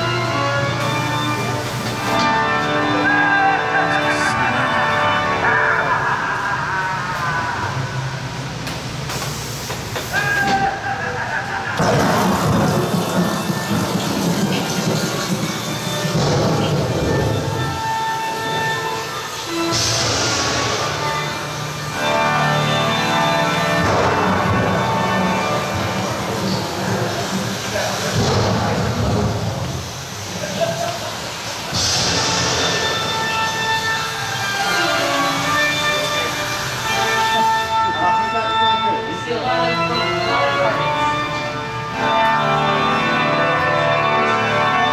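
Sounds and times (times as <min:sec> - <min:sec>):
orchestral music: 0:00.0 - 0:08.3, 0:11.8 - 0:30.2, 0:31.7 - 0:44.9.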